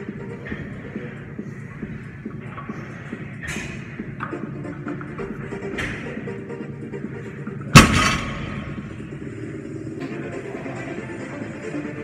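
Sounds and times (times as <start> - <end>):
background music: 0.0 - 12.0
barbell crashing on rubber floor: 7.8 - 8.9.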